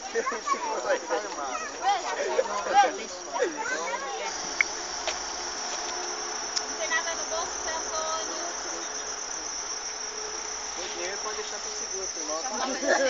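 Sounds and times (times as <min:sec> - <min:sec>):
insects chirring in grass: 0:00.0 - 0:13.0.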